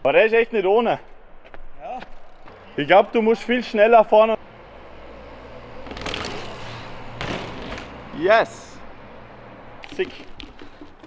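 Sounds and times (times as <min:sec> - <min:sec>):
bike tyres rolling on concrete: 0:00.1 - 0:11.0.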